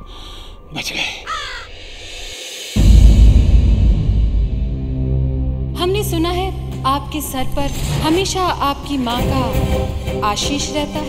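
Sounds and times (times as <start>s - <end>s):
crow cawing: 1.2s - 2.0s.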